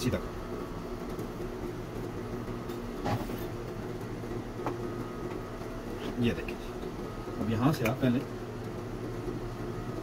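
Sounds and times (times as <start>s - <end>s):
mechanical hum: 0.0s - 10.0s.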